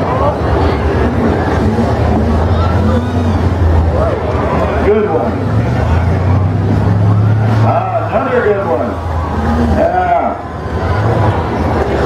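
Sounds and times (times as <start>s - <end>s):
car engines revving: 0.0s - 12.0s
voices: 0.0s - 12.0s.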